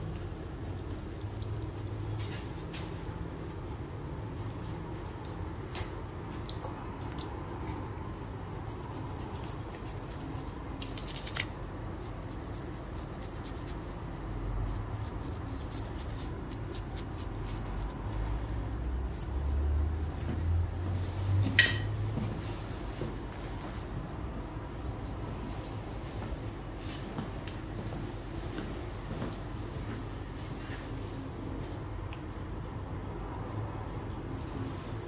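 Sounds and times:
low steady hum: 0:00.0 - 0:35.0
shaving brush swishing lather: 0:08.3 - 0:10.6, 0:11.9 - 0:19.9.

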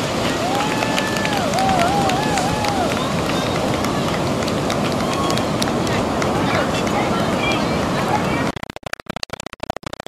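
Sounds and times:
ocean waves breaking on beach: 0:00.0 - 0:08.5
person whooping: 0:00.4 - 0:02.9.

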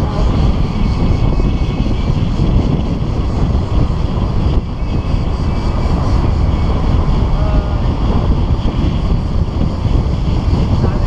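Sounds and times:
car driving on road: 0:00.0 - 0:11.0
wind buffeting microphone: 0:00.0 - 0:11.0.

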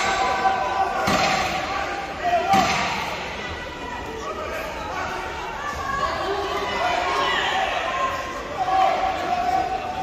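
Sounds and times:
voices in a large hall: 0:00.0 - 0:10.0.

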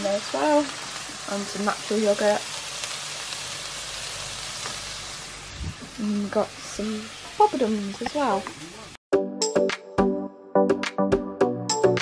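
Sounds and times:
food sizzling in frying pans: 0:00.0 - 0:09.0.

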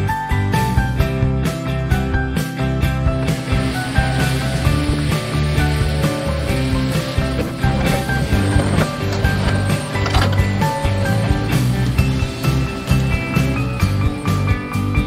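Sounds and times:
background music: 0:00.0 - 0:15.0
excavator digging into dirt: 0:06.5 - 0:13.6.

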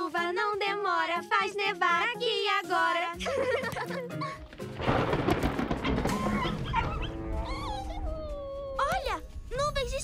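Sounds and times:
cartoon background music: 0:00.0 - 0:04.8, 0:06.0 - 0:10.0
thunder rumble: 0:04.8 - 0:09.9.

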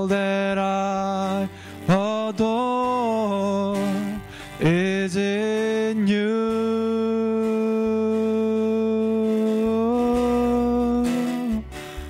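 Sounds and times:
acoustic guitar chords: 0:00.0 - 0:12.0
man singing: 0:00.0 - 0:12.0.

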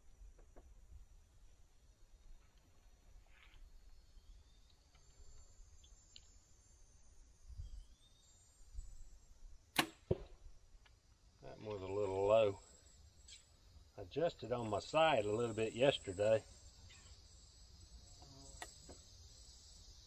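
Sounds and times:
bowstring release crack: 0:09.8 - 0:10.3
arrow striking target: 0:09.8 - 0:10.4.

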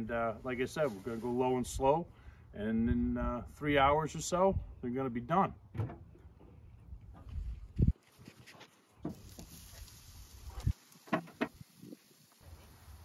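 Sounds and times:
low thump on grill: 0:09.0 - 0:09.6, 0:10.6 - 0:11.7.

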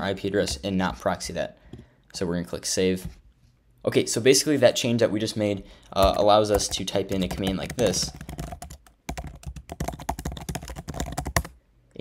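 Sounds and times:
typing on computer keyboard: 0:05.9 - 0:11.6.

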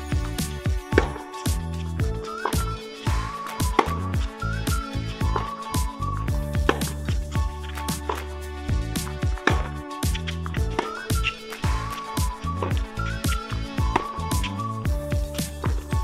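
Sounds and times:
background music with beat: 0:00.0 - 0:16.0.

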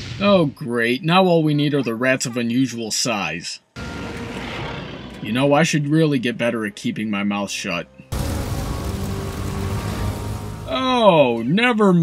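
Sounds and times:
rumbling hissing noise swell: 0:08.1 - 0:11.4.

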